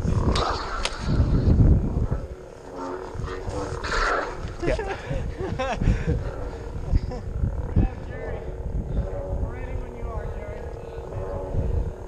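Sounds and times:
low rumble of microphone buffeting: 0.0 - 12.0.

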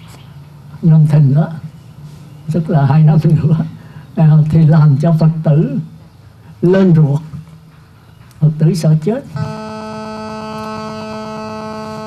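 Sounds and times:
steady electrical buzz: 9.4 - 12.0.

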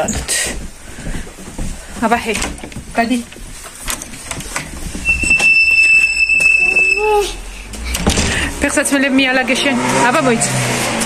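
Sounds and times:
knocks and clicks: 2.3 - 6.6
door hinges squealing: 3.9 - 8.5.

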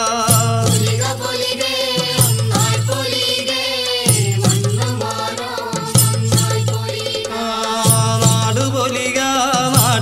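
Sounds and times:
chant-like sung melody: 0.0 - 10.0.

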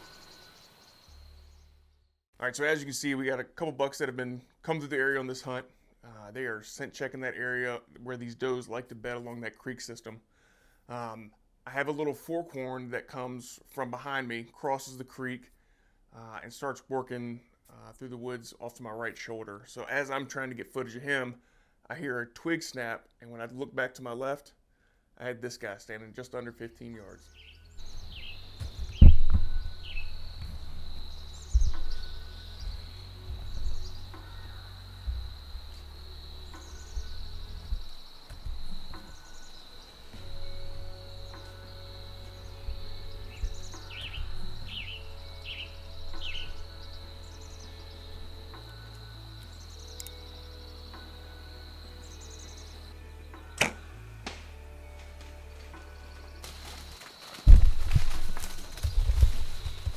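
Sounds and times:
birds chirping: 26.9 - 54.0, 55.7 - 59.9
low bumps: 27.7 - 49.0, 53.6 - 59.9
high insect drone: 27.8 - 59.9
bow string snap: 53.4 - 54.7
deer crashing through leaves: 54.4 - 59.9.

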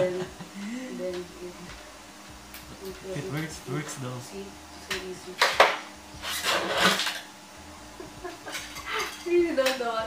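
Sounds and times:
guitar string scraping hiss: 6.2 - 7.4.

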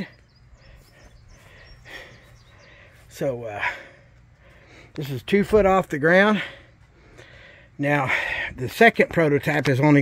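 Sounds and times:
high bird chirps: 0.0 - 3.1.

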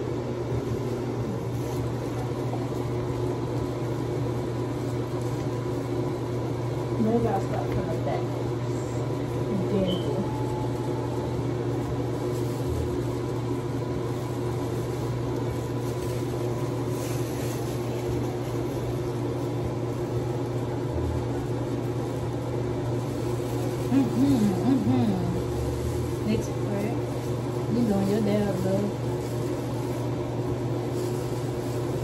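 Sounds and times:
exhaust fan humming: 0.0 - 32.0.

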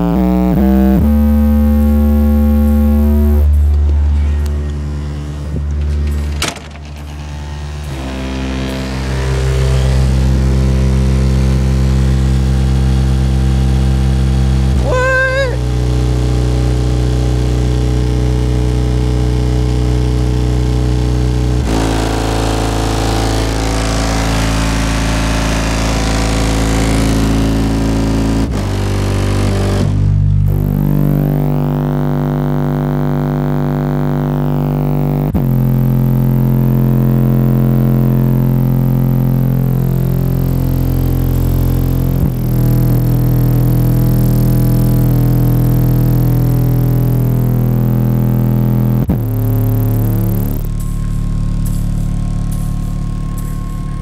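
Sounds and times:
subwoofer bass tones: 0.0 - 54.0.

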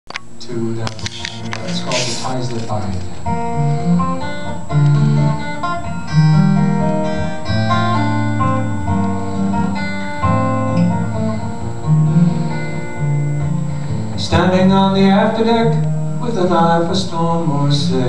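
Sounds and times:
acoustic guitar picking: 0.4 - 18.0.

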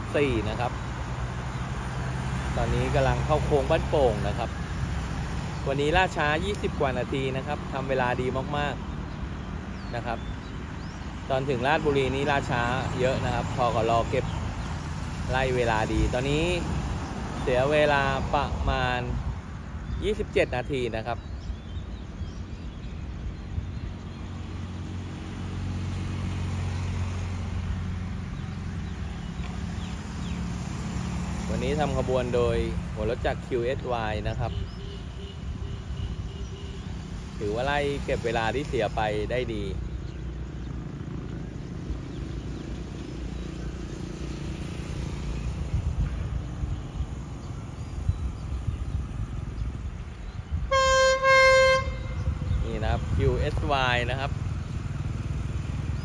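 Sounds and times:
locomotive horn blast: 50.6 - 52.6.

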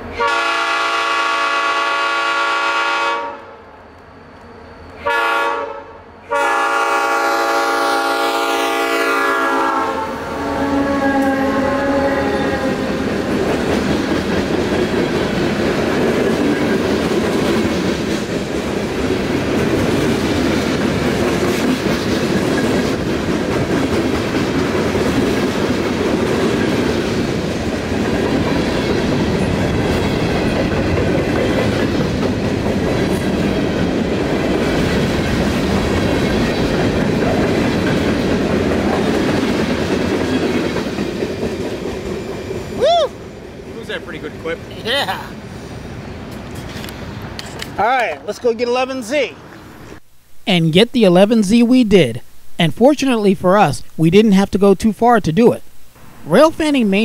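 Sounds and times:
locomotive horn blast: 0.1 - 3.6, 5.0 - 12.9
train wheels rumbling on rails: 10.4 - 47.8.

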